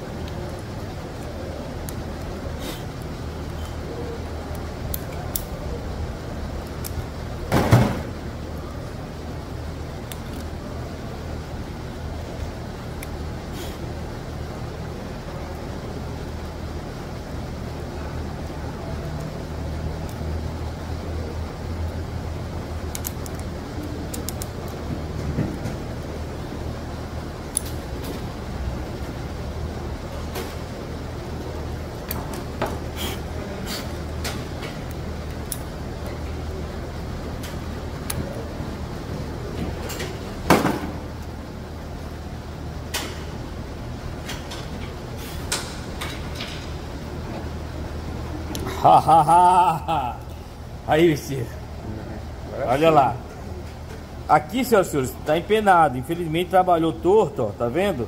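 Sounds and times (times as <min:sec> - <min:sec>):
steady low hum: 0:00.0 - 0:58.0
small steel parts clicking: 0:04.5 - 0:05.6, 0:22.9 - 0:23.5, 0:24.1 - 0:24.8.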